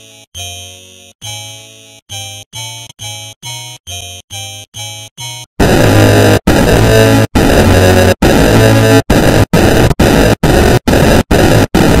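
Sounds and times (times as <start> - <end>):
harsh distorted music: 5.6 - 12.0.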